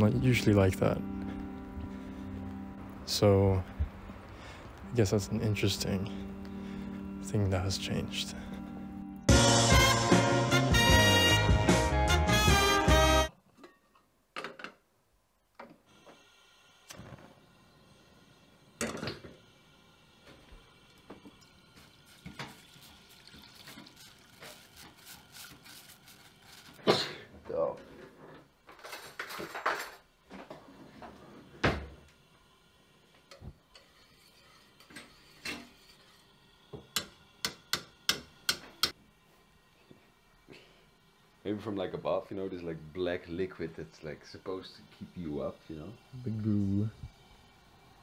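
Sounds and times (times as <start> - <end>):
gas burner igniting: 15.6 - 48.0
gas flame hissing: 15.8 - 28.3, 30.1 - 48.0
match striking: 22.0 - 27.1.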